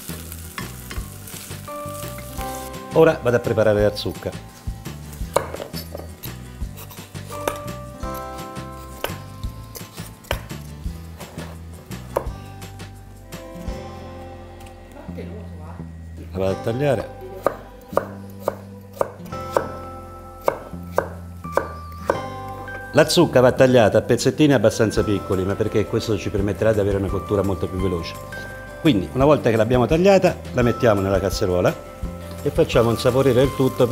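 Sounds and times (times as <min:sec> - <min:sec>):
knife chopping on wooden board: 0:05.3 - 0:06.1, 0:06.8 - 0:07.7, 0:09.0 - 0:09.2, 0:09.8 - 0:10.6, 0:11.2 - 0:12.4, 0:20.4 - 0:22.3.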